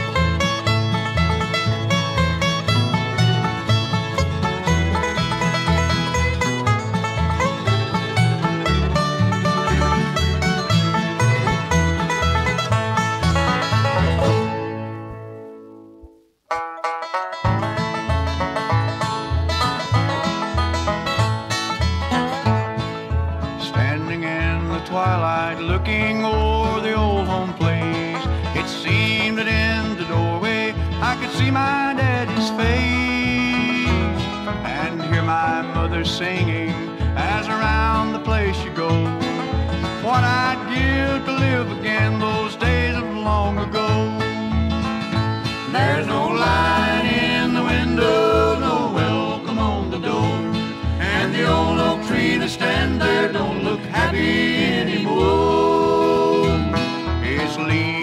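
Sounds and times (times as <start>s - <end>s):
bluegrass band music: 0.0s - 58.0s.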